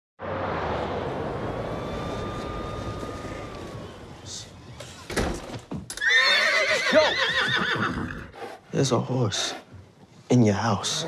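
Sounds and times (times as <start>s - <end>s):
distant highway traffic hum: 0.2s - 5.4s.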